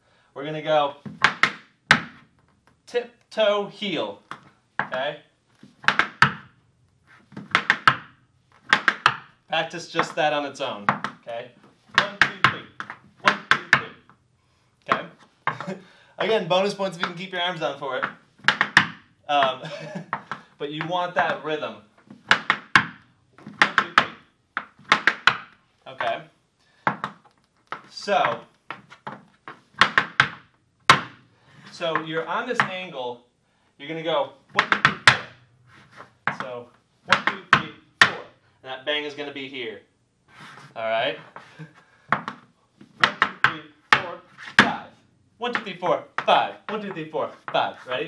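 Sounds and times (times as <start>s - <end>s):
hard shoes tapping on wooden floor: 1.0s - 2.3s, 4.3s - 5.0s, 5.6s - 6.5s, 7.2s - 9.4s, 10.9s - 11.3s, 11.9s - 14.2s, 18.0s - 21.4s, 22.0s - 26.2s, 26.9s - 31.2s, 34.5s - 36.5s, 42.1s - 44.8s, 45.5s - 47.7s.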